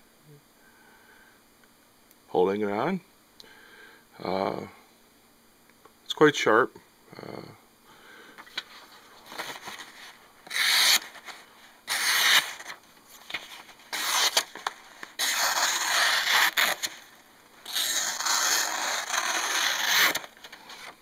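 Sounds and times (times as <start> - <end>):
paper rustling: 8.4 - 21.0
knife slicing paper: 9.4 - 21.0.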